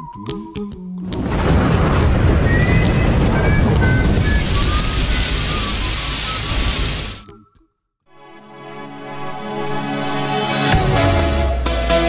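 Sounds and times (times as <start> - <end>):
rumbling explosion blast: 1.0 - 7.2.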